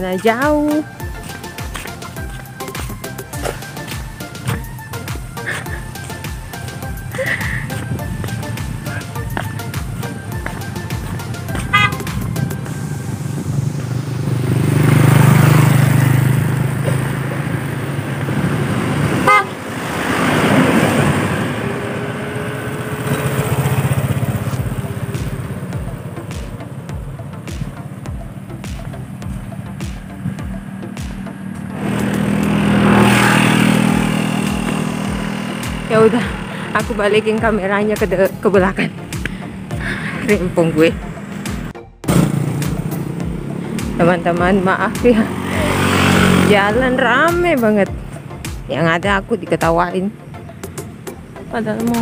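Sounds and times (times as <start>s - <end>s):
vehicles passing on road: 0.0s - 52.0s
car horn tooting: 11.6s - 12.8s, 19.2s - 19.7s.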